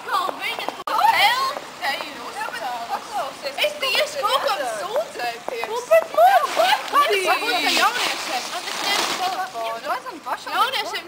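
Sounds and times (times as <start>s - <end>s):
outdoor noise hiss: 0.0s - 11.0s
women talking and calling out: 0.0s - 11.0s.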